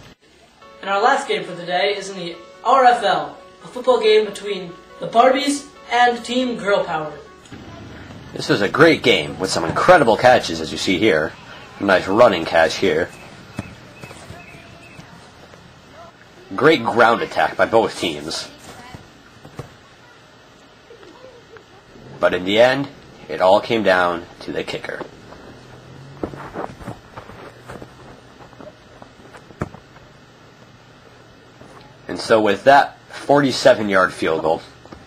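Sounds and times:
faint distant voices: 7.4 - 35.0
footsteps on grass: 11.1 - 16.1, 25.0 - 30.1
foot kicking a football: 13.1 - 15.6, 18.6 - 19.8, 25.0 - 30.0.

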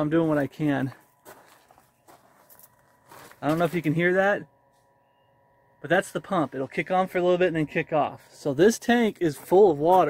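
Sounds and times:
footsteps on gravel: 0.0 - 4.0, 9.1 - 10.0
faint steady hum: 0.0 - 10.0.

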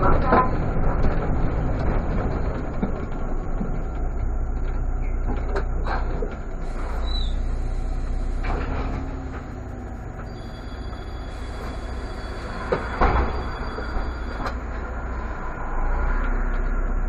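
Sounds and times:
bus engine idling: 0.0 - 17.0.

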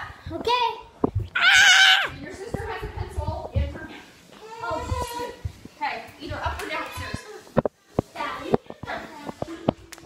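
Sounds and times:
child squealing: 1.4 - 2.2.

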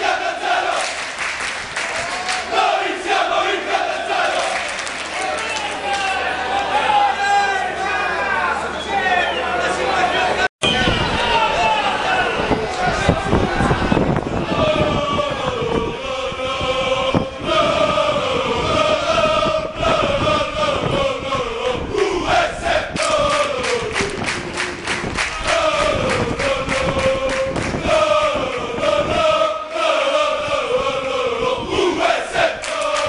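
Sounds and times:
crowd of men chanting: 0.0 - 1.0, 2.1 - 4.9, 11.2 - 33.0
rhythmic hand-clapping: 0.6 - 2.5, 4.1 - 6.1, 22.9 - 28.7, 32.6 - 33.0.

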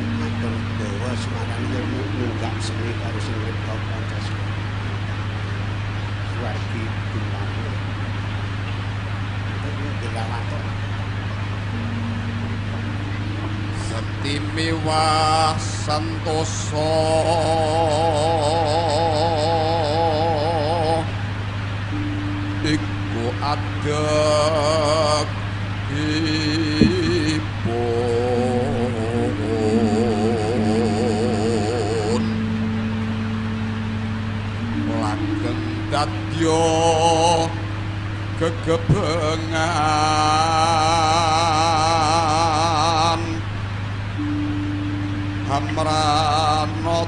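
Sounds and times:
man singing long wavering notes: 0.0 - 5.1, 6.3 - 8.0, 11.7 - 47.0
electrical hum with hiss: 0.0 - 47.0
sustained instrumental tones: 0.0 - 47.0.

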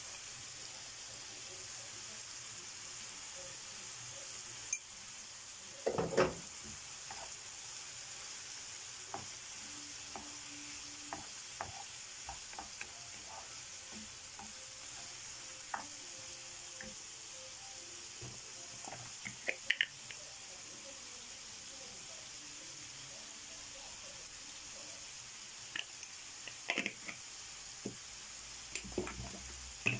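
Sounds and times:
food sizzling in a frying pan: 0.0 - 29.9
spoon tapping pan: 5.8 - 7.4, 9.0 - 17.1, 18.2 - 20.2, 28.7 - 29.9
wooden spoon stirring: 10.0 - 16.1, 28.8 - 29.9.

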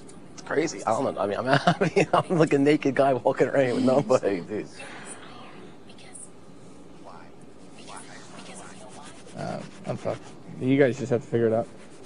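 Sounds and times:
low room hum: 0.0 - 12.0
person whispering: 7.1 - 9.8.

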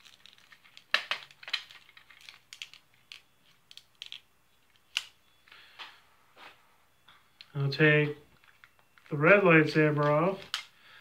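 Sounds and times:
plastic toy parts clicking: 0.0 - 4.2.

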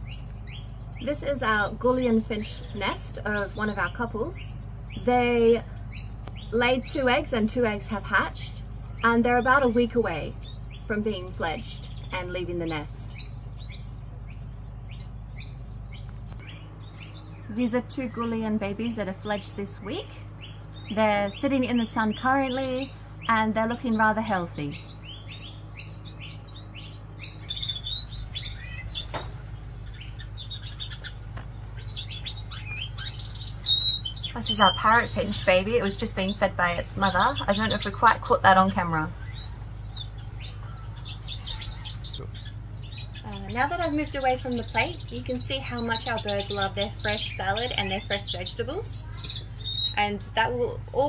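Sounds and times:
low background hum: 0.0 - 51.0
small birds chirping: 0.0 - 51.0.

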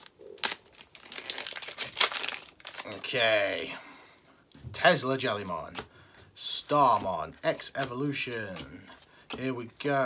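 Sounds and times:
foil wrapper ripping: 0.0 - 3.0
wrapper crinkling: 0.0 - 3.1.

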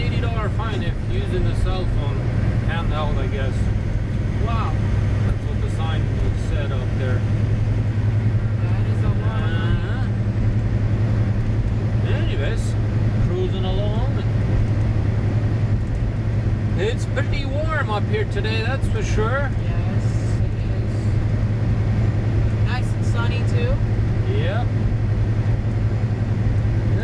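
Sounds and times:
road noise: 0.0 - 27.0
truck diesel engine droning: 0.0 - 27.0.

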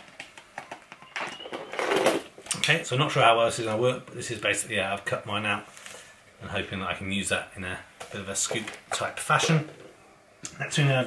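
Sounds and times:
plastic rustling: 0.0 - 2.6.

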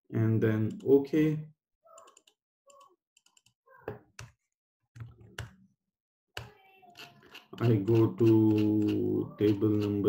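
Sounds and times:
mouse and keyboard clicks: 6.4 - 10.0.

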